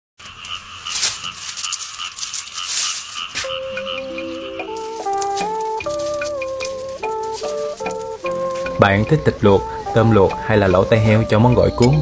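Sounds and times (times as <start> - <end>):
rhythmic chirping: 0.2 - 12.0
dry leaves rustling and crackling: 0.4 - 9.2
flute-like music: 3.4 - 12.0.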